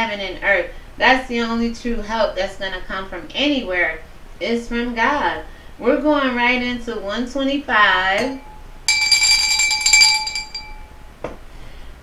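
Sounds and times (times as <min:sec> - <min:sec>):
metallic bell-like ringing: 0:08.2 - 0:11.2.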